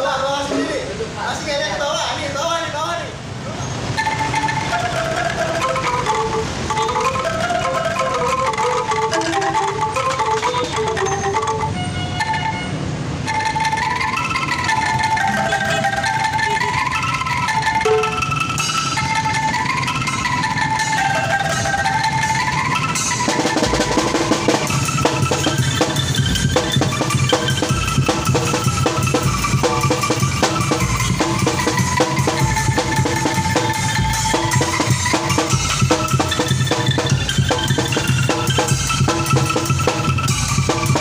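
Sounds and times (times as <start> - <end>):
bamboo ensemble melody: 0.0 - 1.2, 3.3 - 41.0.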